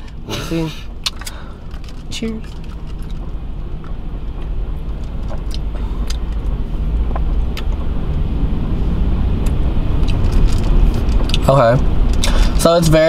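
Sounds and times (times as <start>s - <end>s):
car cabin rumble: 0.0s - 13.0s.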